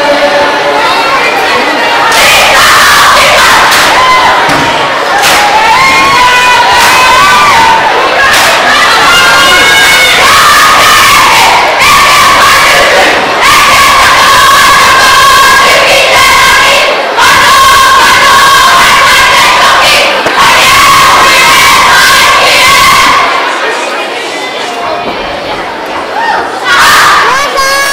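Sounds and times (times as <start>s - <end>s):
girls singing: 0.0s - 23.5s
girls chanting in unison: 5.9s - 23.4s.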